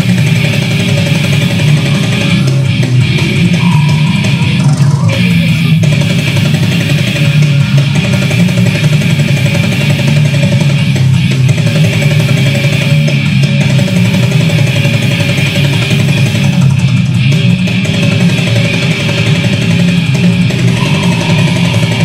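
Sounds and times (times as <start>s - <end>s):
electric guitar: 0.0s - 22.0s
grindcore band playing live: 0.0s - 22.0s.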